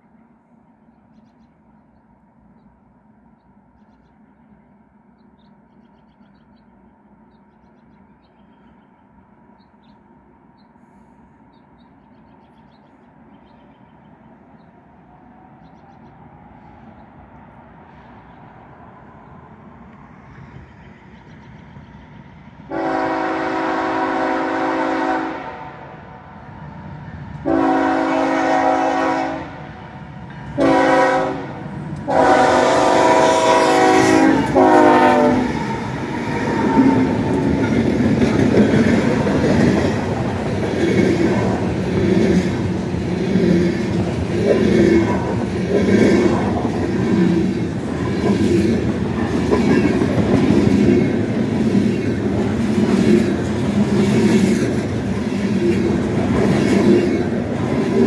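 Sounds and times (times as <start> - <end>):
train rumbling past: 0.0 - 58.0
locomotive air horn blasts: 22.7 - 26.0, 27.4 - 29.7, 30.6 - 35.6.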